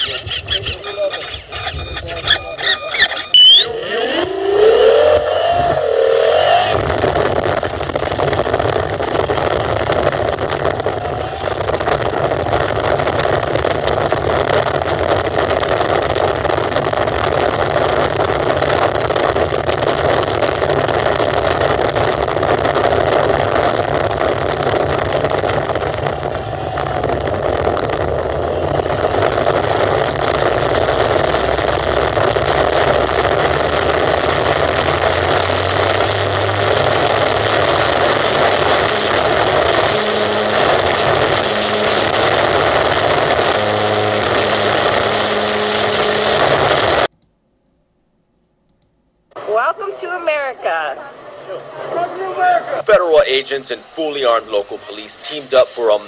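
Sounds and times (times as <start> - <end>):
wind rushing over microphone: 0.0 - 47.1
model airplane motor and propeller: 24.6 - 47.1.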